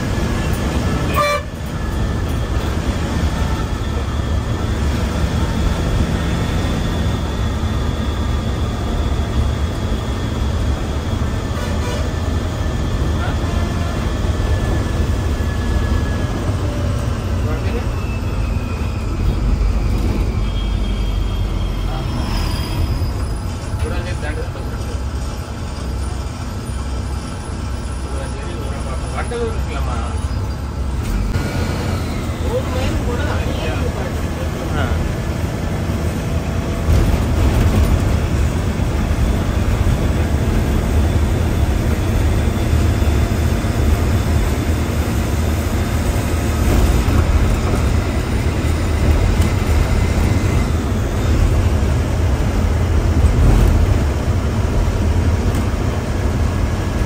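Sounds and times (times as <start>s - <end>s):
bus engine and road rumble: 0.0s - 57.0s
vehicle horns tooting: 1.0s - 1.7s.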